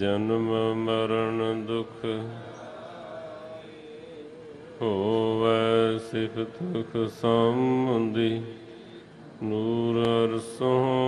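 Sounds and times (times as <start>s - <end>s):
person singing a hymn: 0.0s - 11.0s.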